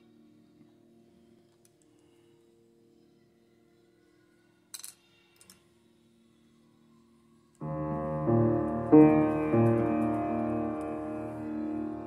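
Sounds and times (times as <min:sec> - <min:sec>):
loud piano chord: 0:07.6 - 0:12.0
piano notes: 0:07.6 - 0:12.0.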